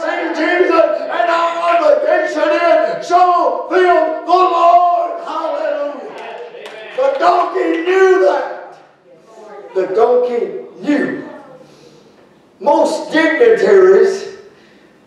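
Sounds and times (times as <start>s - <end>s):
man preaching loudly: 0.0s - 8.8s, 9.8s - 11.3s, 12.6s - 14.5s.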